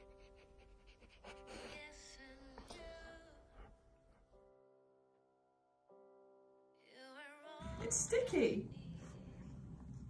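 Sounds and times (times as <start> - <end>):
dog panting: 0.0 - 4.5
quiet background music: 0.0 - 10.0.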